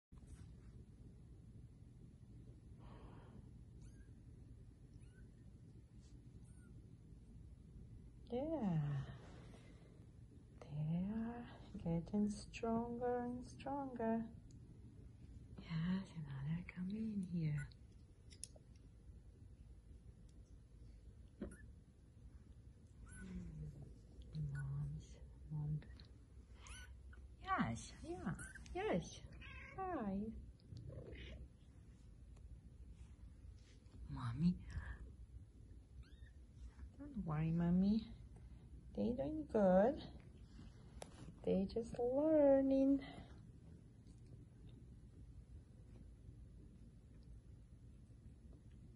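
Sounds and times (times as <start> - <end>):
low steady hum: 0.1 - 48.9
soft rustling on blanket: 0.2 - 1.1, 5.7 - 6.5, 8.7 - 10.6, 31.6 - 35.0, 36.4 - 38.8, 39.9 - 46.7.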